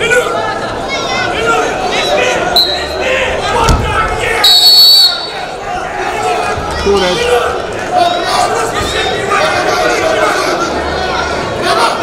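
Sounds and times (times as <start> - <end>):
referee's whistle blast: 4.4 - 5.4.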